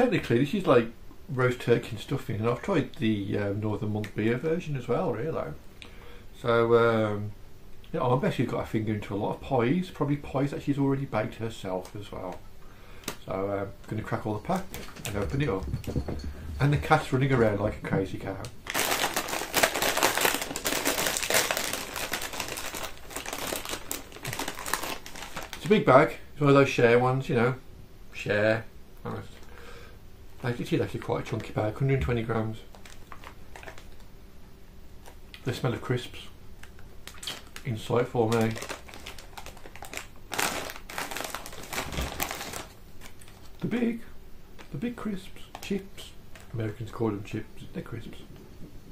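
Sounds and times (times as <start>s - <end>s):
crisp packet crinkling: 13.8s - 15.6s, 18.6s - 25.9s, 32.6s - 34.1s, 36.6s - 43.8s.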